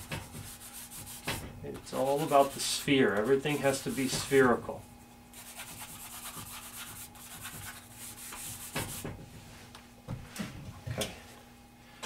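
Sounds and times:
charcoal rubbing on paper: 0.0 - 1.4, 2.0 - 4.5, 5.3 - 9.0.

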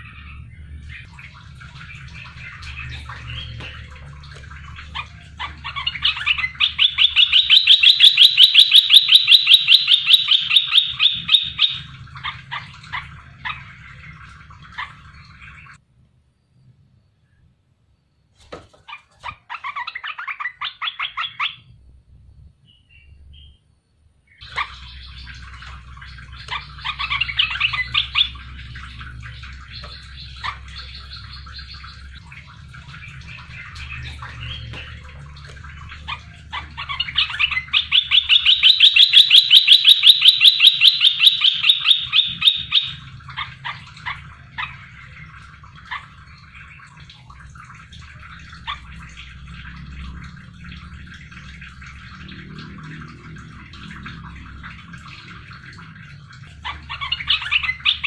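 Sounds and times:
low steady hum: 0.0 - 18.3, 19.7 - 58.0
bird singing chattering phrases: 1.8 - 15.8, 24.4 - 46.8.

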